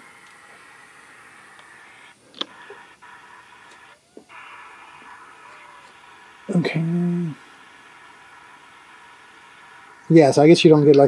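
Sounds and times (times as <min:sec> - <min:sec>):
faint hum: 0:00.0 - 0:11.0
faint steady hiss: 0:00.0 - 0:11.0.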